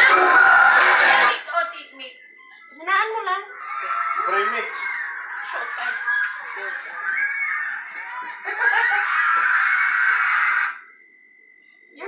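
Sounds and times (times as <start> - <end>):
people laughing and shrieking: 0.0 - 1.4, 2.4 - 10.9.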